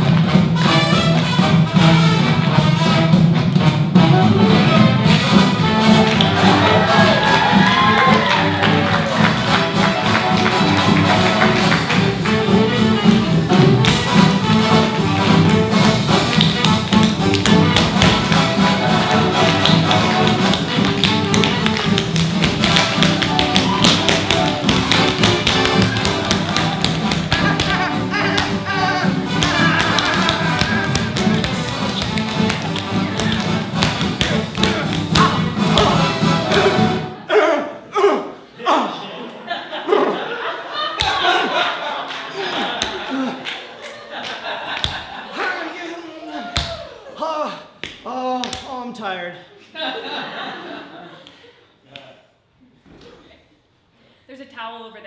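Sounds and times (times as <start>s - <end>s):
backing music: 0.0s - 37.3s
tap shoes on wooden stage: 5.0s - 14.4s, 15.2s - 36.8s.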